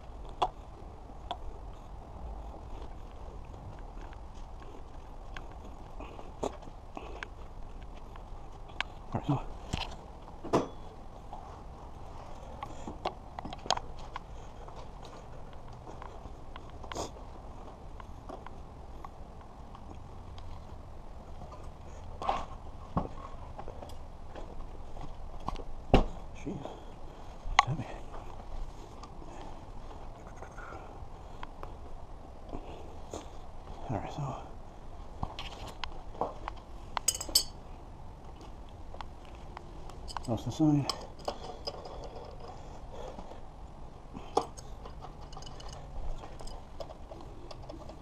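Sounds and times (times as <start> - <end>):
bike clicks and knocks: 35.3 - 37.6
metal wrench clinking: 37.0 - 37.6, 44.5 - 46.6
rustling clatter: 39.2 - 43.4, 44.2 - 48.0.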